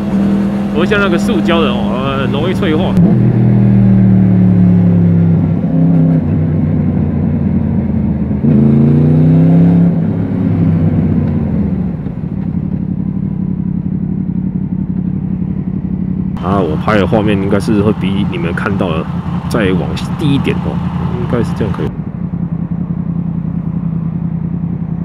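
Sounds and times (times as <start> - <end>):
motorcycle engine running: 0.0 - 9.3, 9.9 - 25.0.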